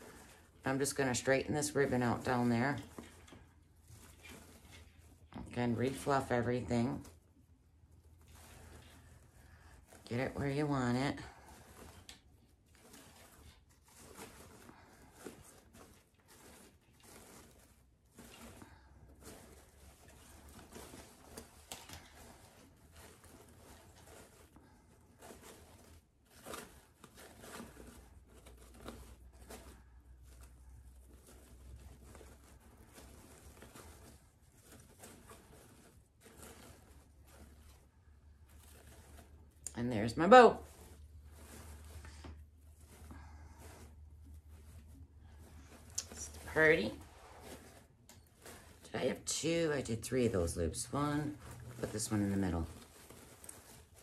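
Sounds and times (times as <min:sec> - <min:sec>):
ribbon rustling and crinkling: 0:00.0 - 0:54.0.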